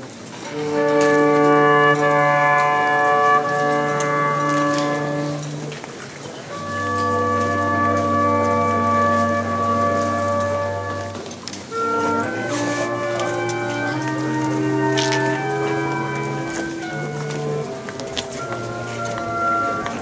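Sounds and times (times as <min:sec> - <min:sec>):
slow organ chords: 0:06.5 - 0:11.2, 0:11.8 - 0:20.0.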